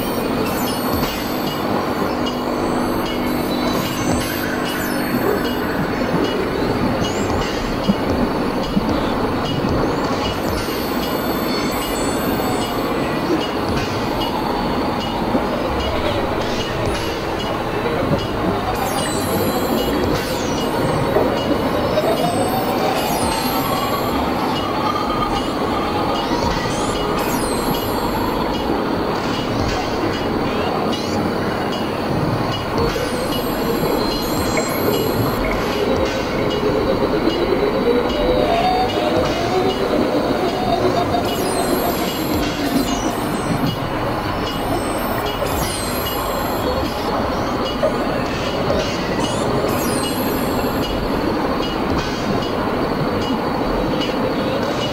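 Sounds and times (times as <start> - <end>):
grinding electronic noise drone: 0.0 - 54.9.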